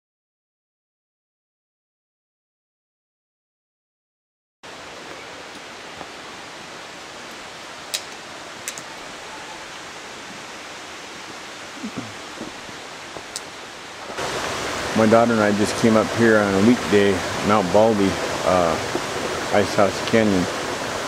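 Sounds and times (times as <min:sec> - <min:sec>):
creek flowing over rocks: 0:04.6 - 0:21.0
faint clicks: 0:07.3 - 0:08.9.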